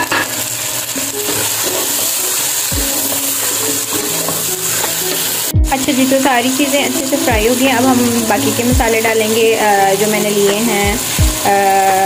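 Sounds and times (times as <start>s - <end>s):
food sizzling in hot oil: 0.0s - 12.0s
low thumps: 7.4s - 9.0s.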